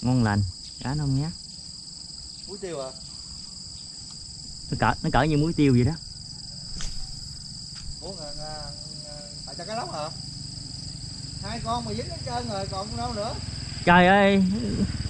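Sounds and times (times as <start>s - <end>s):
voices talking: 0.0s - 1.4s, 2.4s - 3.6s, 4.2s - 6.2s, 7.7s - 15.0s
high-pitched insect chorus: 0.0s - 15.0s.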